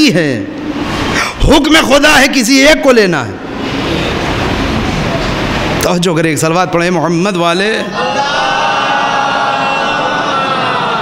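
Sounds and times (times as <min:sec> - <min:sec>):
congregation chanting in unison: 0:07.8 - 0:11.0.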